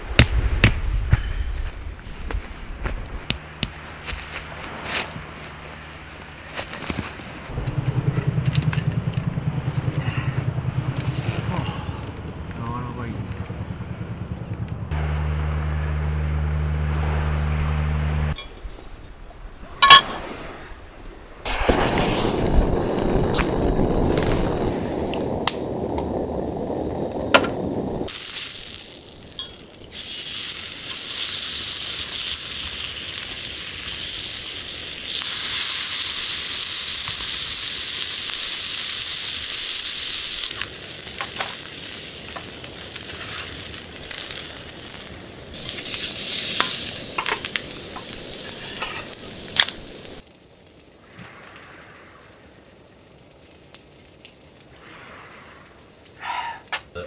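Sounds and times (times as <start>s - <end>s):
low rushing noise: 7.2s - 28.1s
chicken sizzling on griddle: 28.1s - 51.2s.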